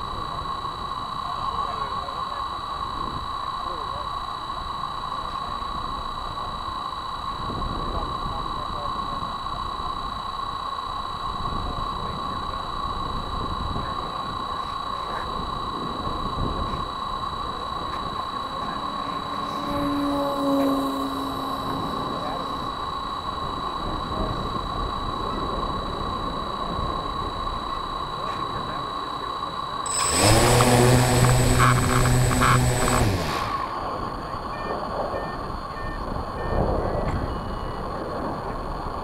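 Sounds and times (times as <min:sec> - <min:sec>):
low hum: 0:00.0 - 0:37.2
high-pitched whine: 0:00.0 - 0:39.0
wind buffeting microphone: 0:11.2 - 0:28.8.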